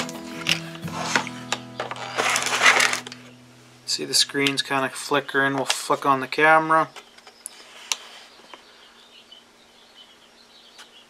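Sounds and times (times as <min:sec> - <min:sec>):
monitor and cable rustling: 0:00.0 - 0:03.2.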